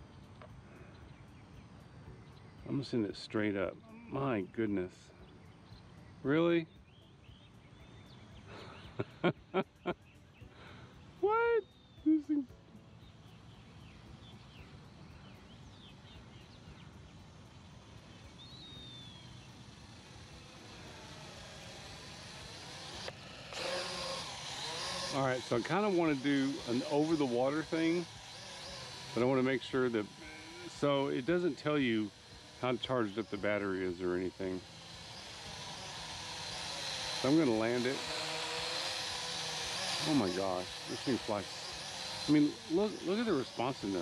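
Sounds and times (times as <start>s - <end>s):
bird chirps: 0.0s - 20.6s
drone propellers buzzing: 0.0s - 44.0s.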